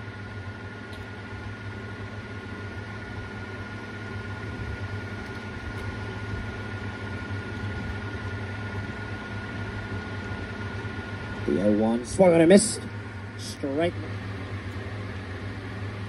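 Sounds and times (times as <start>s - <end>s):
background hum and hiss: 0.0s - 16.0s.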